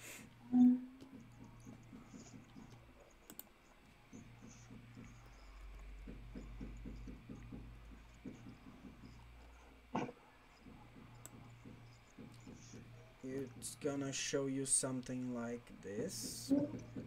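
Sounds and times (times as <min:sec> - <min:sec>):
rapid typing on keyboard: 0:01.0 - 0:17.0.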